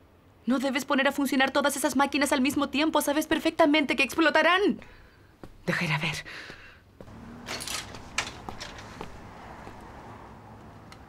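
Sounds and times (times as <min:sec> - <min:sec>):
low steady background noise: 0:00.0 - 0:11.0.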